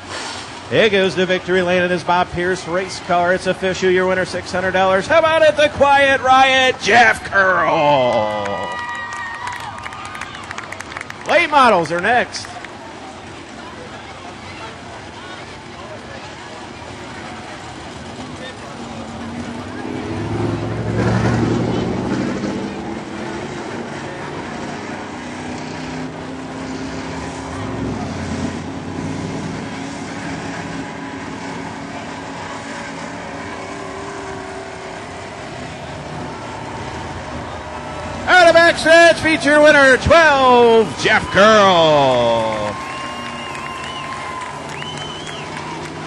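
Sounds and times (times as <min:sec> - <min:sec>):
race car engine passing: 0:00.0 - 0:46.0.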